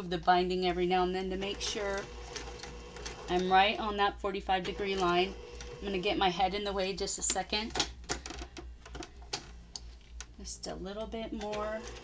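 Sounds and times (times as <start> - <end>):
sewing machine low hum: 0.7 - 7.0, 11.4 - 12.0.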